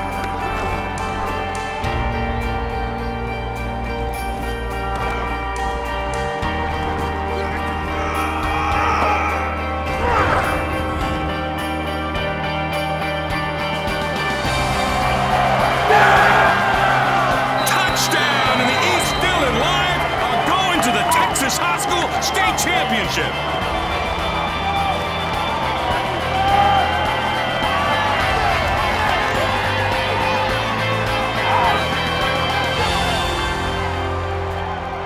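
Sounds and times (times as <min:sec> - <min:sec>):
crowd cheering and shouting: 0:00.0 - 0:11.8, 0:13.5 - 0:35.0
background score music: 0:00.0 - 0:35.0.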